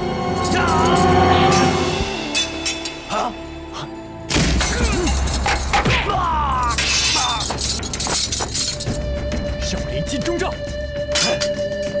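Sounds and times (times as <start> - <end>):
background music: 0.0 - 12.0
heavy chain clanking: 6.7 - 9.4.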